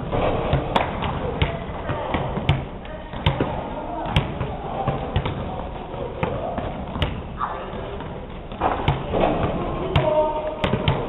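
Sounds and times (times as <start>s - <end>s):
basketball bouncing on gym floor: 0.0s - 11.0s
murmur of voices: 0.4s - 11.0s.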